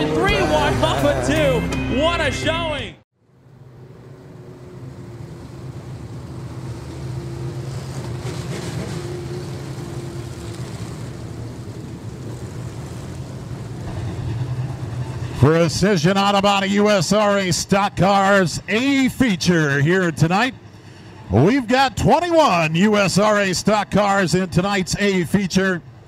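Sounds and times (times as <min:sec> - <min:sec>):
stock car engines running together: 0:03.3 - 0:19.9.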